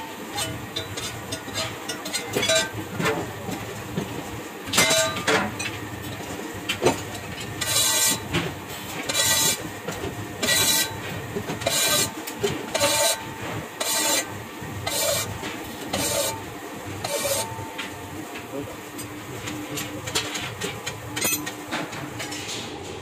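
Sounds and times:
metal scraping on metal: 0:15.9 - 0:16.4, 0:17.0 - 0:17.5.

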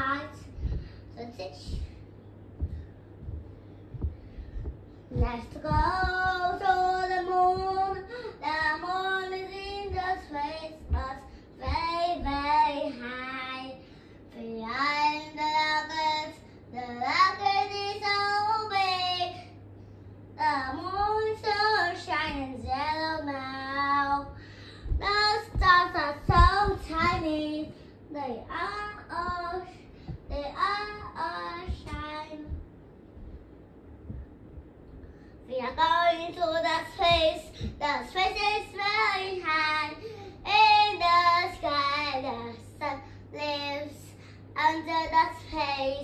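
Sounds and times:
girl singing unaccompanied: 0:00.0 - 0:32.9, 0:35.4 - 0:46.0.

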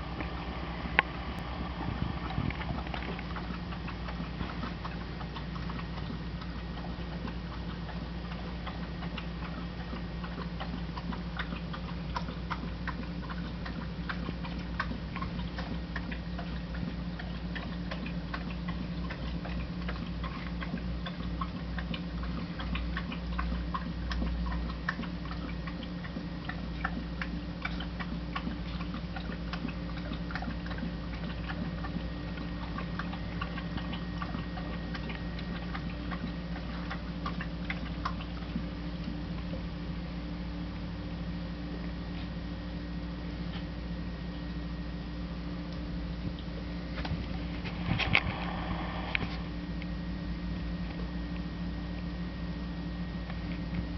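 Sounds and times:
low hum: 0:00.0 - 0:53.9
faint irregular clicks and ticks: 0:02.3 - 0:39.6.

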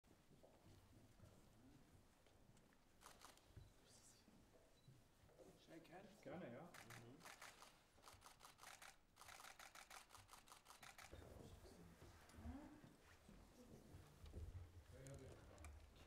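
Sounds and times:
camera shutters clicking: 0:03.0 - 0:03.5, 0:06.8 - 0:11.2.

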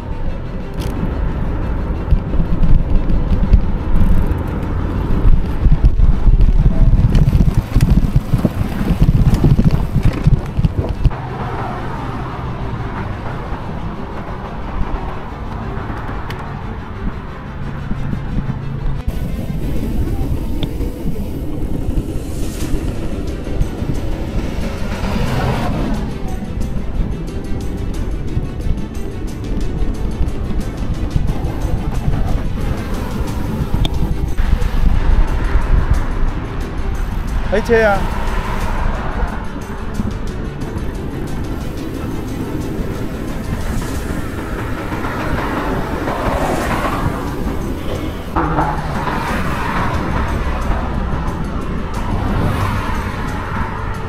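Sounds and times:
background music: 0:00.0 - 0:54.0
vehicles passing: 0:00.0 - 0:54.0
wind and road noise rumble: 0:00.0 - 0:54.0.

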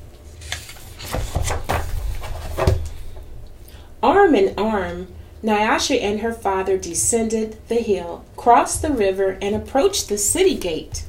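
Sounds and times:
book page rustling: 0:00.2 - 0:03.1.

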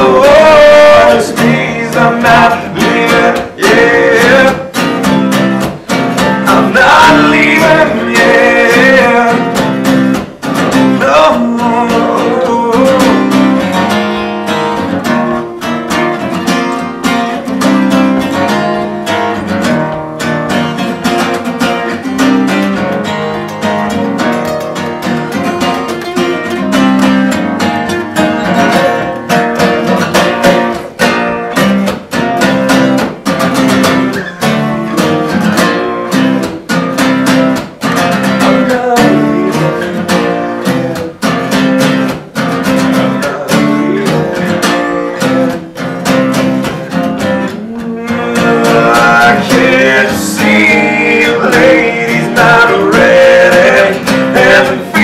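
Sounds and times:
man singing: 0:00.0 - 0:05.2, 0:06.2 - 0:13.9, 0:28.4 - 0:31.0, 0:34.1 - 0:36.7, 0:38.1 - 0:42.0, 0:42.6 - 0:55.0
acoustic guitars strummed: 0:00.0 - 0:55.0.

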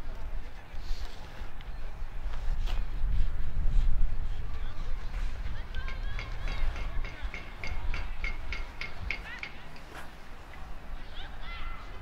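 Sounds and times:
faint distant voices: 0:00.0 - 0:12.0
wind rumbling on microphone: 0:00.0 - 0:12.0.

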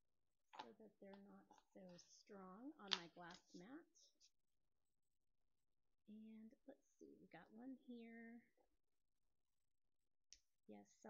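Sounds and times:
woman speaking: 0:00.6 - 0:04.3, 0:06.1 - 0:08.6, 0:10.7 - 0:11.0.

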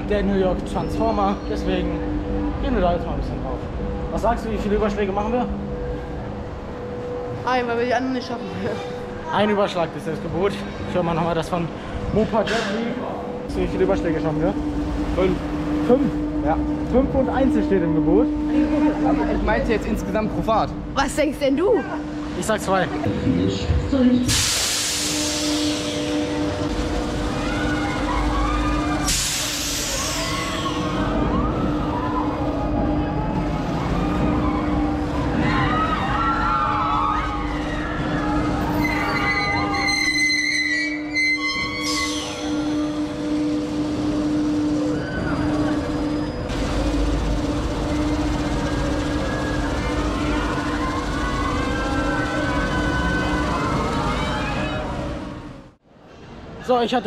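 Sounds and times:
ride mechanical hum: 0:00.0 - 0:57.0
loud hissing bursts: 0:24.3 - 0:26.1, 0:29.1 - 0:30.8
riders screaming and shouting: 0:27.1 - 0:29.1, 0:29.8 - 0:43.0, 0:47.8 - 0:55.3.

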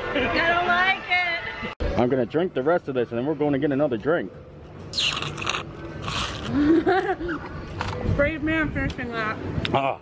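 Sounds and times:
straw slurping drink from cup: 0:05.0 - 0:06.6
person laughing: 0:06.4 - 0:07.5.

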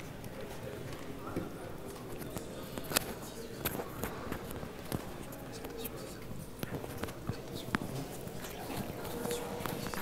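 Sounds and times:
faint muffled talk: 0:00.0 - 0:10.0.

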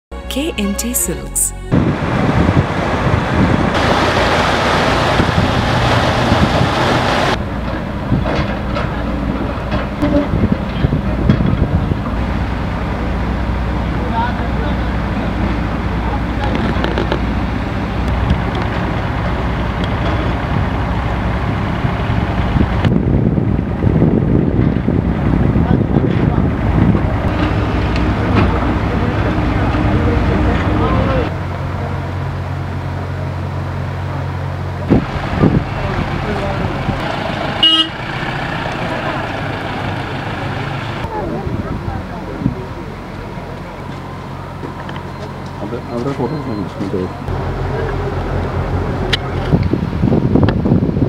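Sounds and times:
people's voices: 0:00.3 - 0:01.7, 0:28.0 - 0:32.1, 0:35.6 - 0:37.6, 0:38.7 - 0:48.2
heavy machinery engines humming: 0:01.6 - 0:51.0.

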